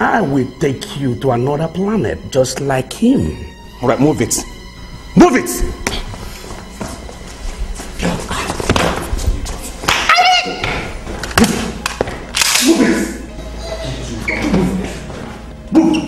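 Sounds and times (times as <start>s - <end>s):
background music: 0.0s - 16.0s
hurried footsteps and thuds: 5.5s - 12.3s.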